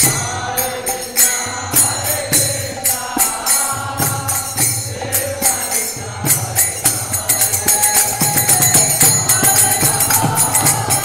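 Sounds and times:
group chanting: 0:00.0 - 0:11.0
hand cymbals ringing: 0:00.0 - 0:11.0.

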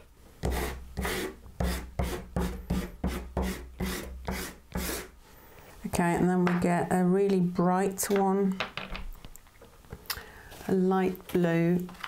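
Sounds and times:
pastel stick scraping on paper: 0:00.4 - 0:05.1.

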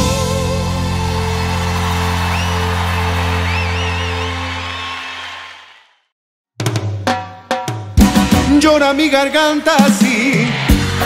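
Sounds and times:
crowd cheering: 0:00.0 - 0:06.1, 0:10.0 - 0:11.0
whistles: 0:01.7 - 0:05.6.

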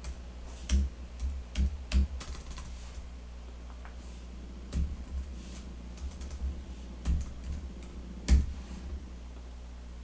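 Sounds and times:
computer keyboard typing: 0:00.0 - 0:02.8, 0:05.9 - 0:08.5
low hum: 0:00.0 - 0:10.0.

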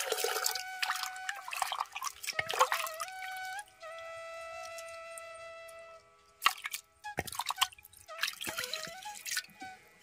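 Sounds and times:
water splashing and dripping: 0:00.0 - 0:09.9.

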